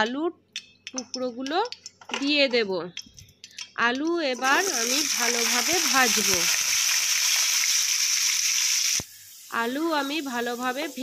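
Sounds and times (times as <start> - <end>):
potatoes sizzling in hot oil: 4.4 - 11.0.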